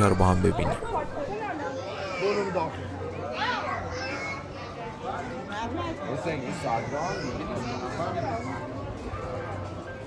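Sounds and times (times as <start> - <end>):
chatter of passers-by: 0.0 - 10.0.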